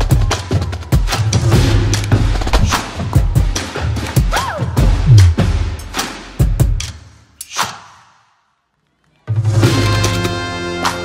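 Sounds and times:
whoosh transition effect: 0:05.0 - 0:05.5
background music: 0:09.3 - 0:11.0.

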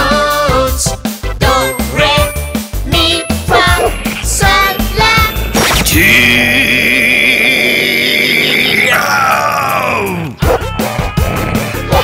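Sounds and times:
music with a beat: 0:00.0 - 0:05.6
man yelling in fright: 0:08.6 - 0:10.4.

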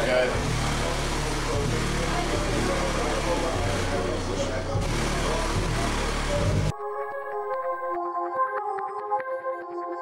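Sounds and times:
indistinct voices: 0:00.0 - 0:06.7
electronic music with synth notes: 0:00.0 - 0:10.0.

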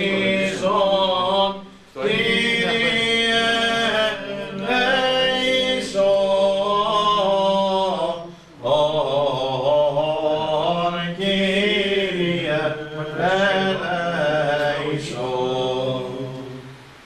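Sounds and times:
men chanting: 0:00.0 - 0:16.6.

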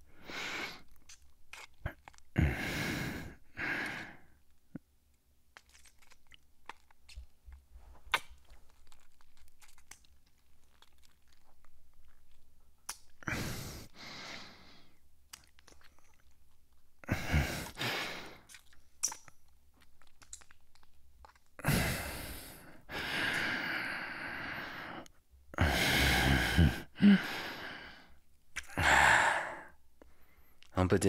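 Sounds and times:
wet kissing and sucking sounds: 0:00.2 - 0:02.4, 0:05.5 - 0:14.5, 0:15.3 - 0:22.5, 0:28.5 - 0:28.8.

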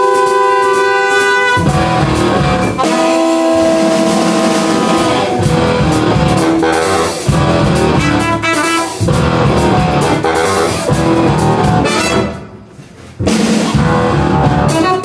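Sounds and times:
horns holding long notes: 0:00.0 - 0:12.7, 0:13.8 - 0:15.0
cymbals: 0:00.0 - 0:15.0
jazz band playing: 0:00.0 - 0:15.0.

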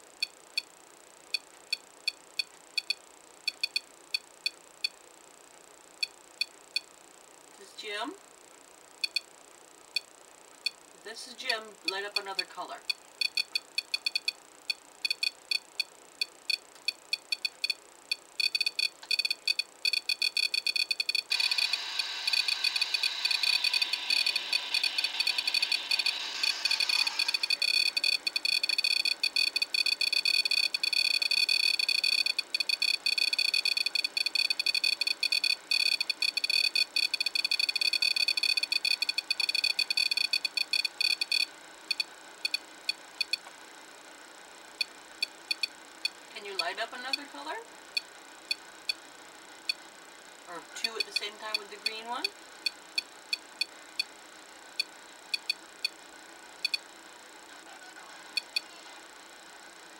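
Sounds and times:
rapid high-pitched electronic beeps: 0:02.8 - 0:04.6, 0:11.8 - 0:43.4, 0:44.8 - 0:46.2, 0:55.3 - 0:55.6.

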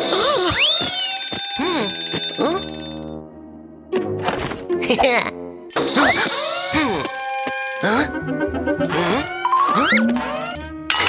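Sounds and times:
high pulsing alarm ringing: 0:00.0 - 0:03.2.

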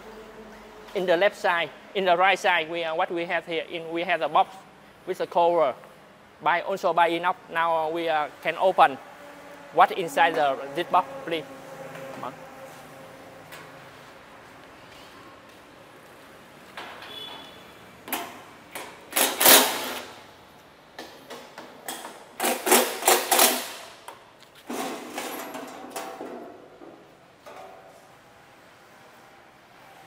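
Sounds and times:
metal cover clattering and scraping: 0:24.7 - 0:27.9.

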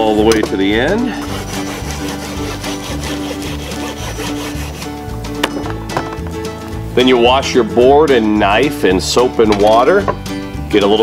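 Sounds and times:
background music: 0:00.0 - 0:11.0
knife sawing through meat: 0:01.1 - 0:05.0
blade rubbing on wooden board: 0:01.2 - 0:05.2.

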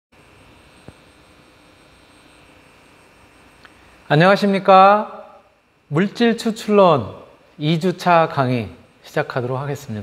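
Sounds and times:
room hum and hiss: 0:00.2 - 0:10.0.

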